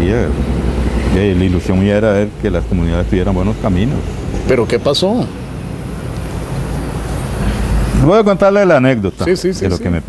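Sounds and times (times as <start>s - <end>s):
low steady rumble: 0.0s - 8.5s.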